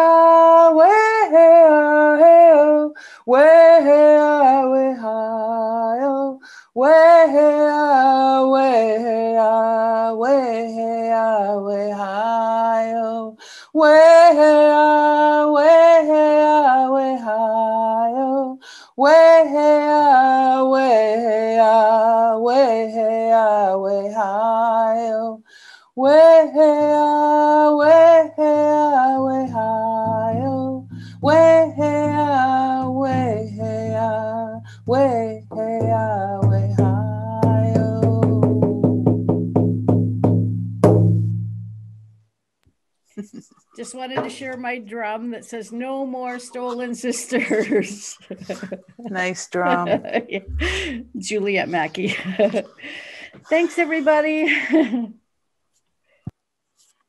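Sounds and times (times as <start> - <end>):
low steady tone: 49.7 - 51.3.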